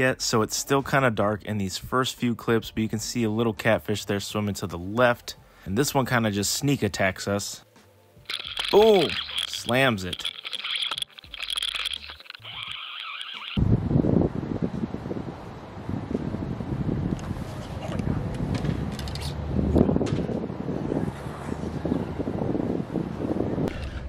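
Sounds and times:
wind buffeting microphone: 0:13.6 - 0:24.0.

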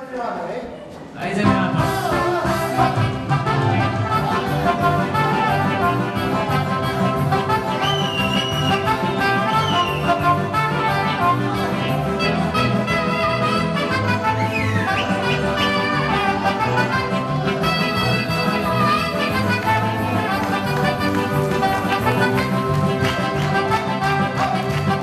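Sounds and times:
live band playing dance music: 0:01.3 - 0:25.0.

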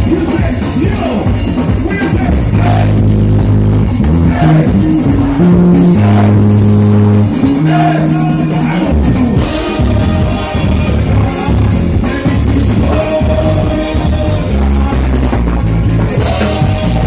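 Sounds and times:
live band playing amplified music: 0:00.0 - 0:17.0.

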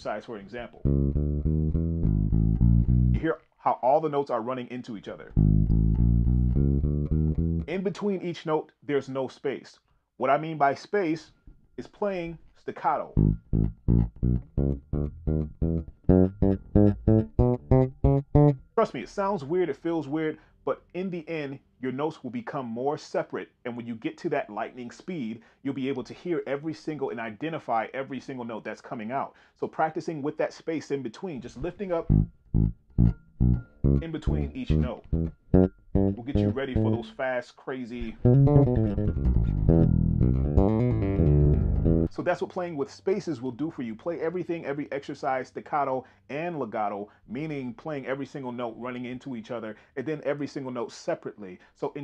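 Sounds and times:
electric bass staccato notes: 0:00.8 - 0:03.3, 0:05.3 - 0:07.7, 0:13.1 - 0:18.7, 0:31.6 - 0:37.1, 0:38.0 - 0:42.2.

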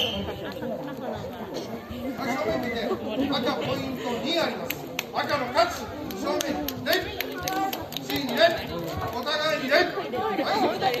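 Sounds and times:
people chattering in echoing hall: 0:00.0 - 0:11.0.

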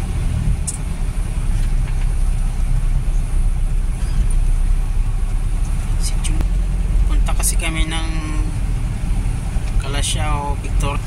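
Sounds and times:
van engine and road rumble: 0:00.0 - 0:11.0.

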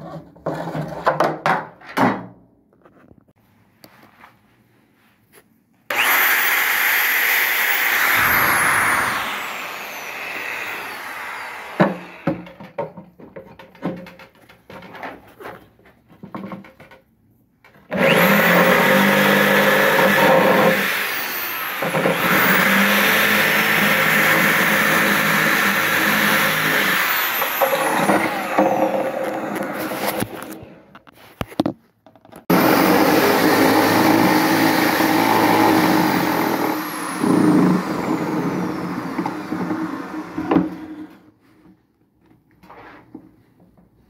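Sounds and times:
electric grinder cutting resin: 0:05.9 - 0:12.4, 0:17.9 - 0:30.6, 0:32.5 - 0:41.1.

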